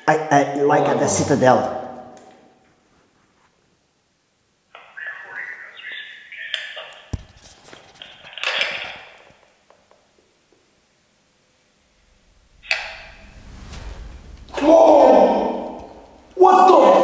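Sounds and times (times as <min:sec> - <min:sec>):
tinny playback through small speaker: 0:04.7 - 0:07.3
low thump: 0:11.9 - 0:16.4.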